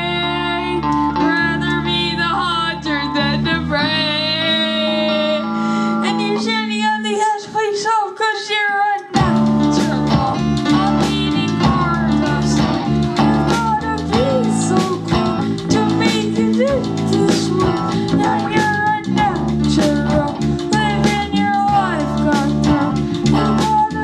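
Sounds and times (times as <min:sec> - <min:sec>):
live rock band playing: 0:00.0 - 0:07.8, 0:09.0 - 0:24.0.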